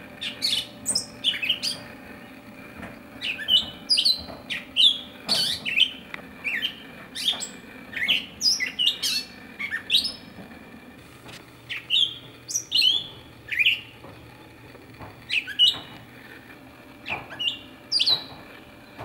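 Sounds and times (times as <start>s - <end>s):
songbirds chirping: 0.0s - 11.0s, 11.6s - 19.0s.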